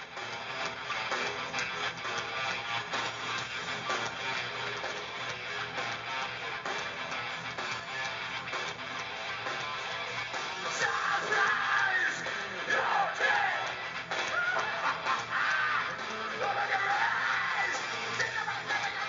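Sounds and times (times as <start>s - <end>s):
live rock band playing: 0.0s - 19.0s.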